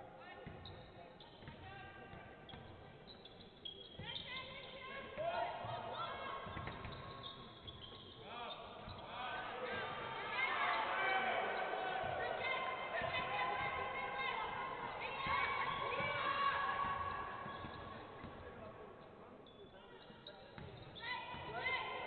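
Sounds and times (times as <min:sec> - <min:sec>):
sneakers squeaking: 0:00.3 - 0:22.0.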